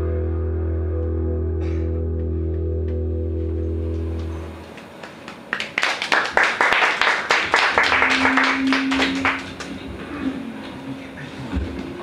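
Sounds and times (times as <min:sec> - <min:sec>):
audience applauding: 0:04.2 - 0:10.1.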